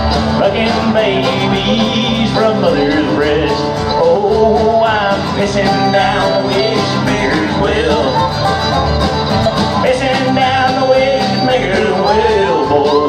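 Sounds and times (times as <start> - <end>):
live country band playing: 0.0 - 13.0.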